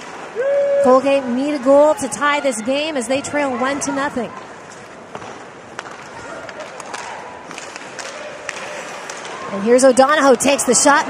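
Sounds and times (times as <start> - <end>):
arena crowd noise: 0.0 - 11.0
skates scraping ice: 3.5 - 11.0
hockey sticks and puck clacking: 4.7 - 11.0.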